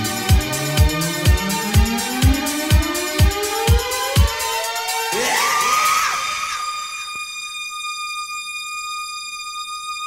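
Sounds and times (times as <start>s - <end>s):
high siren-like synthesizer tone: 4.6s - 10.0s.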